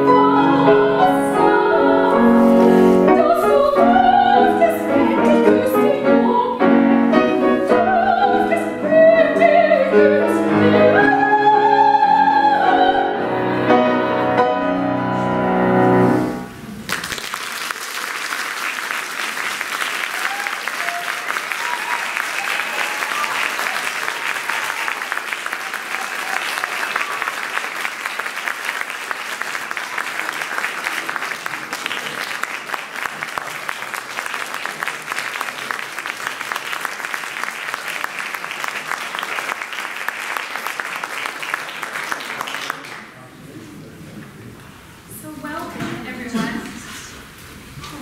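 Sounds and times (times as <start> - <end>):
audience applause: 16.8 - 43.3.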